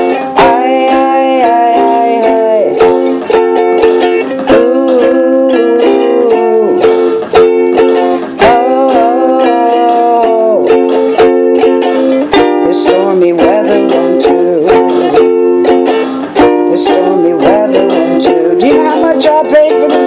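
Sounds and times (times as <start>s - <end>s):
person singing wordless notes: 0.0s - 3.4s, 4.2s - 11.3s, 12.1s - 20.0s
ukulele strumming: 0.0s - 20.0s.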